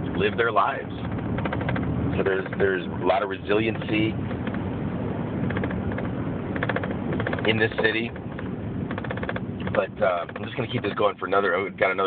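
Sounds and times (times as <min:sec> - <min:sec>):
road and engine noise in car: 0:00.0 - 0:12.0
small clicks or rattles: 0:01.0 - 0:02.7, 0:05.4 - 0:10.6.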